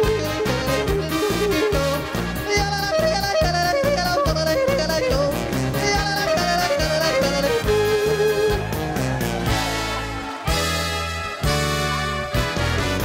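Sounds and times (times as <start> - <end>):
man yodeling into a microphone: 0.0 - 8.6
folk-style music with steady beat: 0.0 - 13.0.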